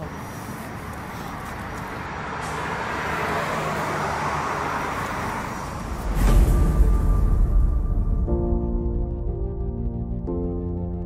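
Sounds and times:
cars passing on highway: 0.0 - 8.6.

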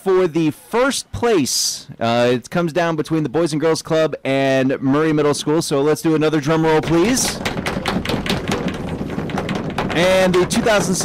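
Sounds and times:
hands drumming on tabletop: 6.7 - 11.0.

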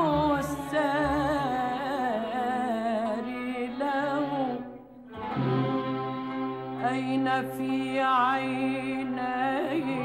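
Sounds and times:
orchestra strings playing: 5.1 - 10.0.

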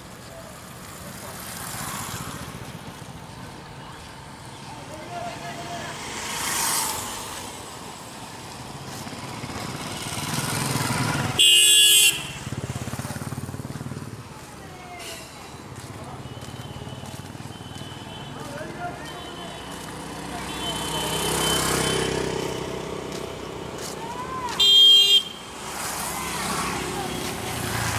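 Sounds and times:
vehicles passing: 0.0 - 27.9
loud vehicle horn blast: 11.4 - 12.5, 24.5 - 25.4.

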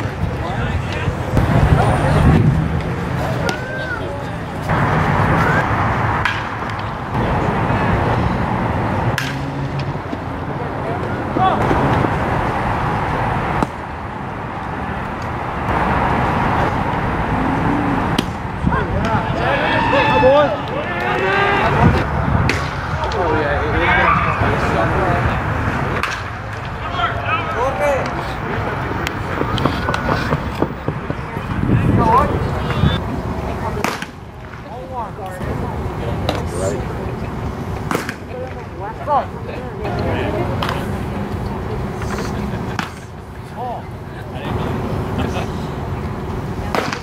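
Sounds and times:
players and spectators calling out: 0.0 - 5.8, 6.6 - 13.6, 16.7 - 47.0
outdoor background noise: 0.0 - 47.0.

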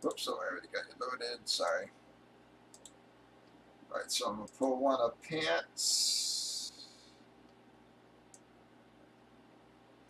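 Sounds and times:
faint short clicks: 2.7 - 3.6.

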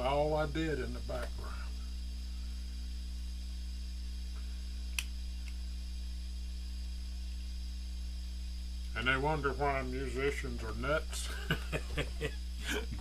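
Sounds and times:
mains hum: 0.0 - 13.0
sharp click: 4.9 - 5.6.

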